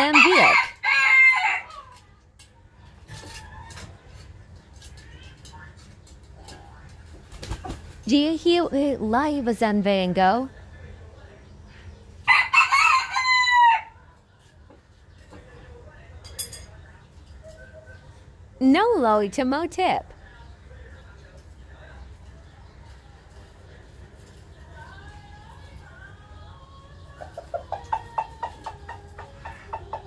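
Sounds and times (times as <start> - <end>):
rooster clucking: 0.0 - 1.9, 27.1 - 30.0
rooster crowing: 0.0 - 1.9, 12.2 - 14.0.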